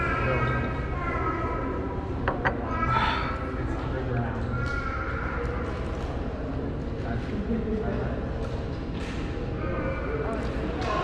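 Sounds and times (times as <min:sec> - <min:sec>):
indistinct voices in echoing hall: 0:00.0 - 0:11.0.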